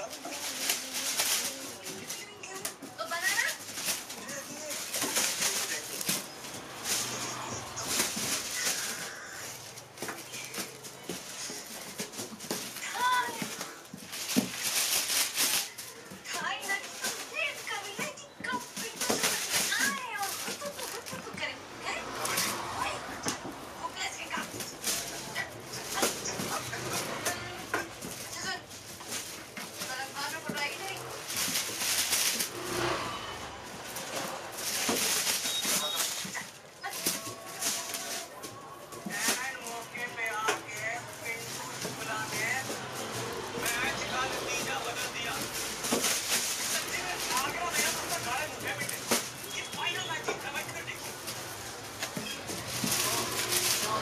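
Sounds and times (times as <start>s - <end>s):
plastic sheets crinkling: 0.0s - 54.0s
tinsel rustling: 0.0s - 54.0s
background voices: 32.4s - 54.0s.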